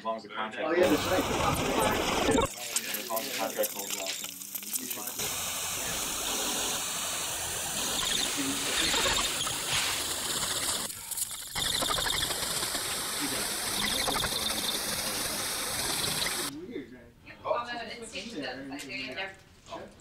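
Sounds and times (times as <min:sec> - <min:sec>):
steady rushing hiss: 0:00.8 - 0:16.5.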